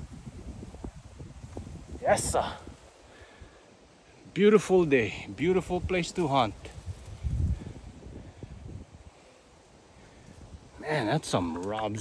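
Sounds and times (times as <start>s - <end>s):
footsteps through dry grass: 0.0s - 3.1s, 5.3s - 10.7s.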